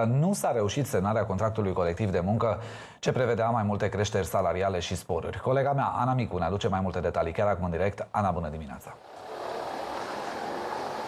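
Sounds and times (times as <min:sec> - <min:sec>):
city street traffic: 0:09.1 - 0:11.0.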